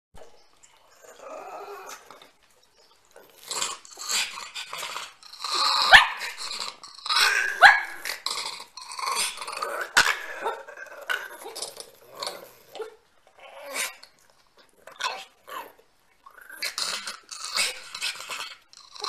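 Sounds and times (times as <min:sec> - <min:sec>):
dog barking and growling: 0:03.2 - 0:14.0, 0:16.4 - 0:19.0.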